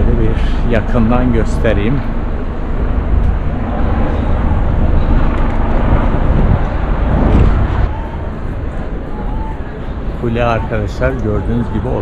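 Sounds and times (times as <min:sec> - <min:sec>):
low rumbling city street noise: 0:00.0 - 0:12.0.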